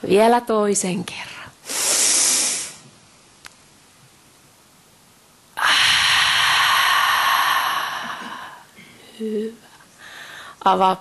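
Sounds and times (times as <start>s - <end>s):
person exhaling deeply: 5.6s - 8.8s.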